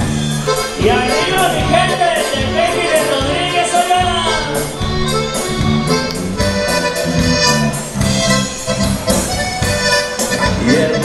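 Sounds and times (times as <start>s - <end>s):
accordion band music: 0.0s - 11.0s.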